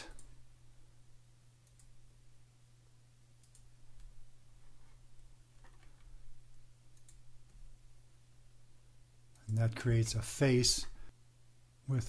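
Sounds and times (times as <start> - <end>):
low electrical hum: 0.0 - 12.0
computer mouse clicks: 1.6 - 2.0, 3.4 - 4.2, 6.9 - 7.6.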